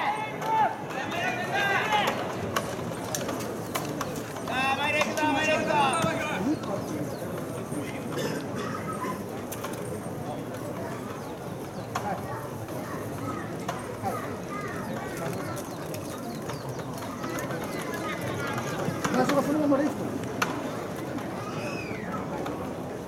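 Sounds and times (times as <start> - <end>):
distant shouted voices: 0.0 - 2.4
outdoor background noise: 0.0 - 23.0.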